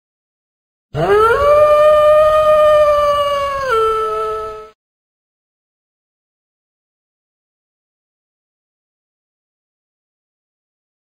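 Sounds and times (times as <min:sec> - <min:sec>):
animal howling: 0:01.0 - 0:04.8.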